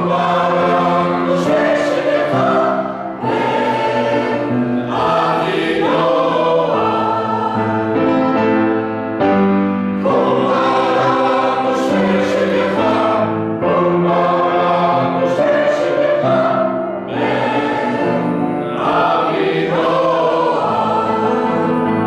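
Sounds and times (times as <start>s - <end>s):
mixed choir singing: 0.0s - 8.7s, 9.9s - 22.0s.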